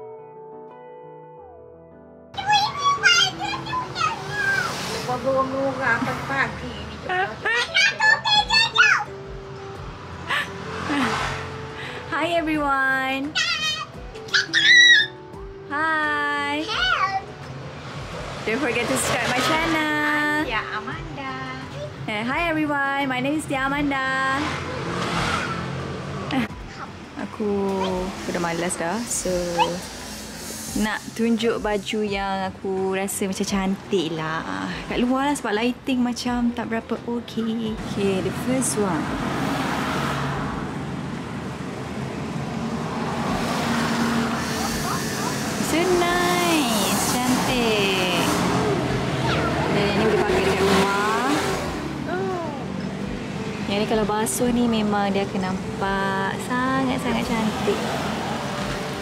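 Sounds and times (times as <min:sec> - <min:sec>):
vehicle passing by: 0:02.7 - 0:08.5, 0:09.1 - 0:13.4, 0:17.3 - 0:59.0.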